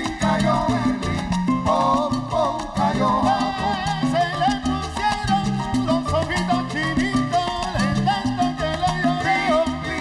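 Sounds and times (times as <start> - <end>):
live salsa band: 0.0 - 10.0.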